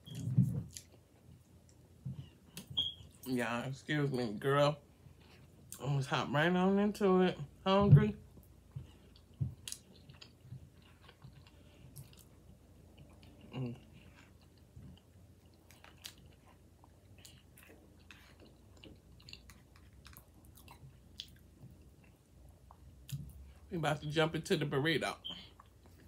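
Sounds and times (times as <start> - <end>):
person chewing food: 0.0 - 3.2, 4.2 - 6.0, 8.2 - 23.7, 25.3 - 26.0.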